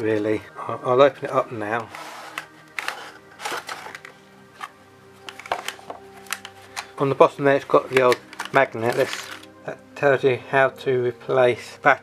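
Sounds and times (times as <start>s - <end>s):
soft background music: 0.0s - 12.0s
cardboard box rustling scrape: 1.8s - 4.1s.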